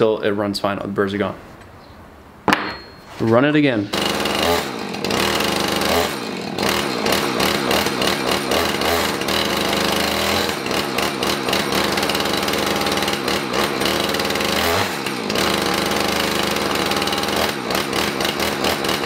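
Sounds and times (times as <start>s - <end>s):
chainsaw running at high throttle: 3.9s - 19.0s.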